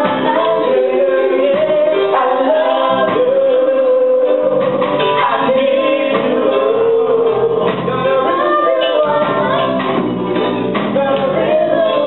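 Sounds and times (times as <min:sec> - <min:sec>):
group singing gospel chorus: 0:00.0 - 0:12.0
reggae backing beat: 0:00.0 - 0:12.0.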